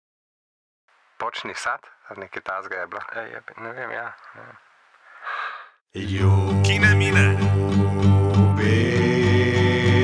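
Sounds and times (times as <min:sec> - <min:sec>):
person sighing: 0:05.2 - 0:05.7
music: 0:06.0 - 0:10.0
person speaking: 0:06.6 - 0:07.5.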